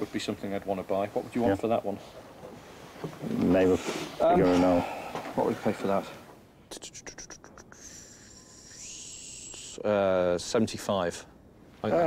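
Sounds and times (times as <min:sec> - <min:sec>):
soft scratching hiss: 0:00.0 - 0:12.0.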